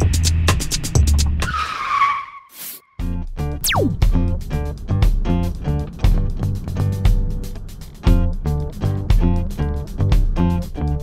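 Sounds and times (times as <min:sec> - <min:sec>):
music beat: 0:03.4 - 0:09.7.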